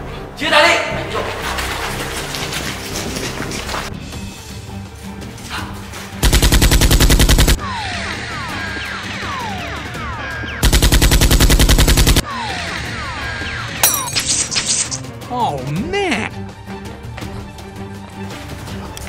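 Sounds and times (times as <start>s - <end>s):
background music: 0.0s - 19.0s
automatic gunfire: 6.2s - 7.6s, 10.6s - 12.2s.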